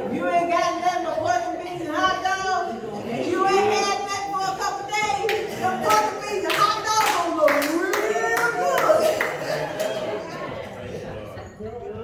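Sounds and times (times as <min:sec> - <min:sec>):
hand claps: 0:05.3 - 0:10.0.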